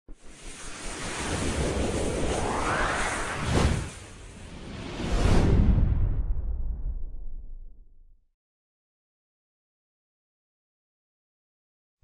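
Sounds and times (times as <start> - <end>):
whooshing rush with low rumble: 0.1 - 8.0.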